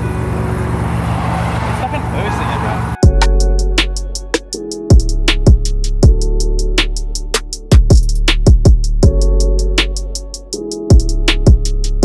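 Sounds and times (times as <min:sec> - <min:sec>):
car engine running: 0:00.0 - 0:03.2.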